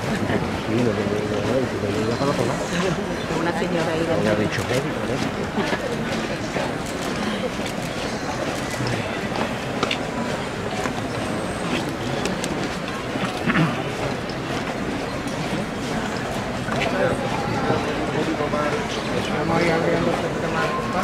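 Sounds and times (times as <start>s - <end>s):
crowd talking: 0.0s - 21.0s
shuffling footsteps: 0.0s - 21.0s.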